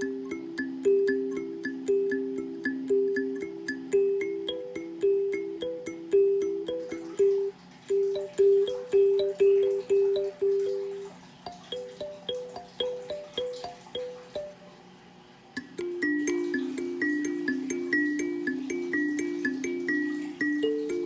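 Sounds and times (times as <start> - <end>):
kalimba melody: 0.0 - 14.8, 15.6 - 21.0.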